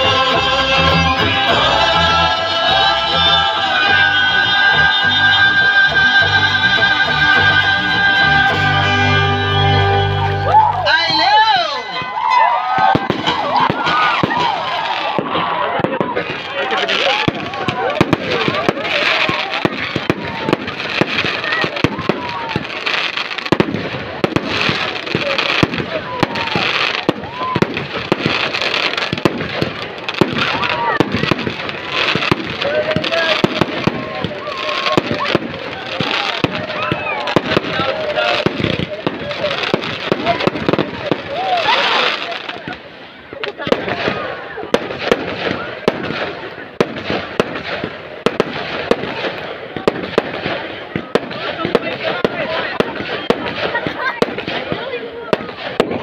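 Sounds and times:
fireworks bangs and crackles: 0.0s - 9.0s, 9.9s - 56.0s.

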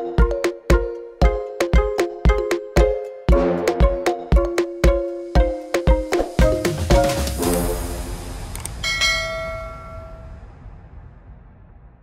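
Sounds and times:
bell-like chime: 8.8s - 10.4s.

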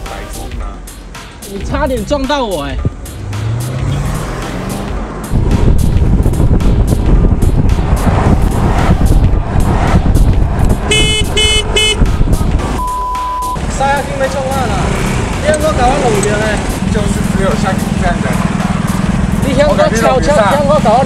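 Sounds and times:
wind and scooter road rumble: 1.6s - 12.9s, 13.6s - 21.0s
vehicle horn toots: 10.8s - 12.1s
steady one-pitch bleep: 12.8s - 13.6s.

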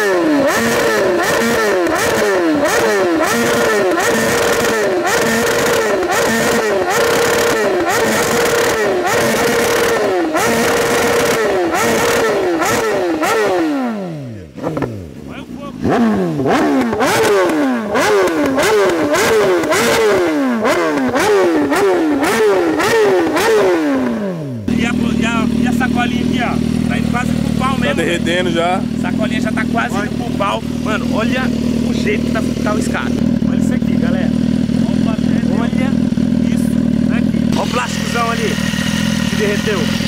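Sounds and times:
motorcycle engine revving: 0.0s - 40.0s
exhaust popping and crackling: 0.2s - 13.7s, 14.6s - 40.0s.

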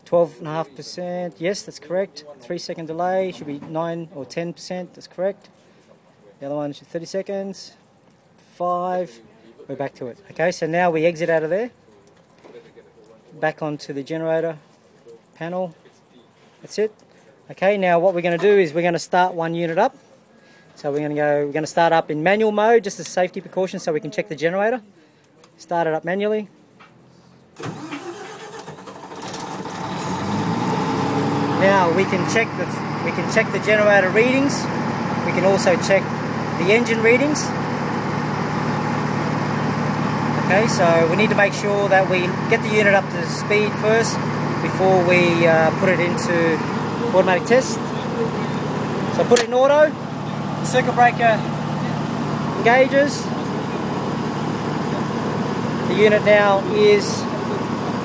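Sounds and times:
diesel generator starting up: 27.6s - 58.0s.

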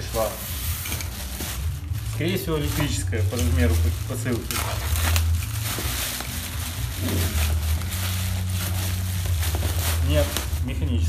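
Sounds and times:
plastic bag crinkling and tearing: 0.0s - 11.0s.

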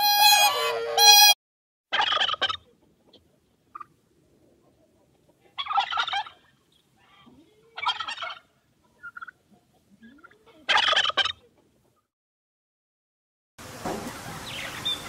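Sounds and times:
turkey gobbling: 1.9s - 12.0s.

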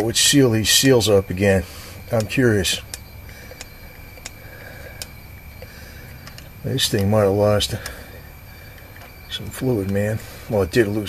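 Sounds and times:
low hum: 0.0s - 11.0s
thin high whine: 0.0s - 11.0s
faint sharp clicks: 2.2s - 7.1s.

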